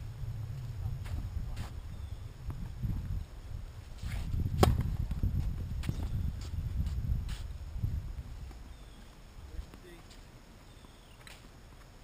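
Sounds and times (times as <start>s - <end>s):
steady low rumble: 0.0s - 10.5s
ball bouncing and struck: 4.6s - 4.9s
racket striking tennis ball: 4.6s - 4.9s.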